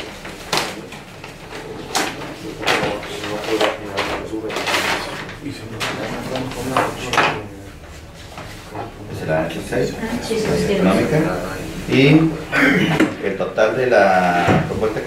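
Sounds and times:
paper rustling: 0:00.0 - 0:07.1.

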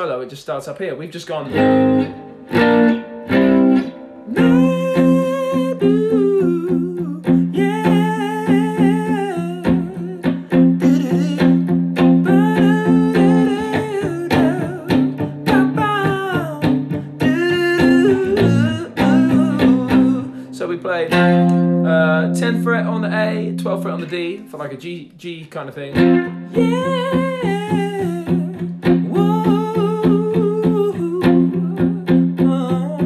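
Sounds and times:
electric guitar power chords: 0:01.5 - 0:24.4, 0:26.0 - 0:33.0
person humming: 0:04.3 - 0:20.5, 0:26.5 - 0:33.0.

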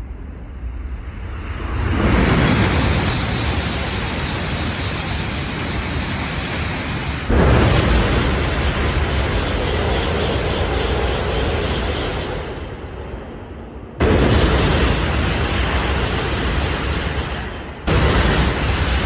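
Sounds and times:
bullet train passing at high speed: 0:00.0 - 0:19.0.

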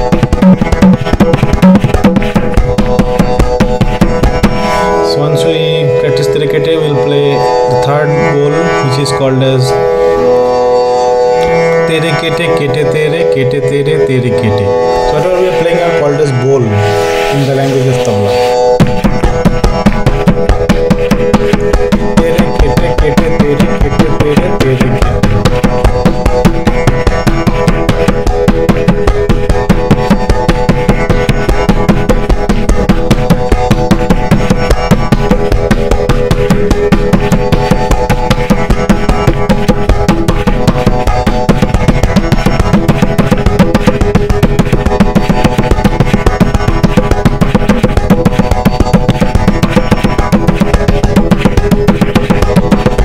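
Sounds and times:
tabla drumming: 0:00.0 - 0:53.0.

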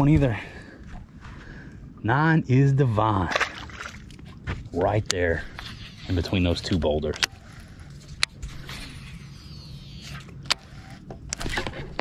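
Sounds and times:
steady low hum: 0:00.0 - 0:12.0
reel spool whirring: 0:07.4 - 0:11.5.

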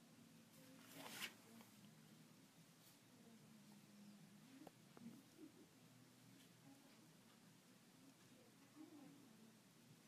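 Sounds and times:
faint steady hum: 0:00.0 - 0:10.0
faint rustle: 0:00.5 - 0:01.9.

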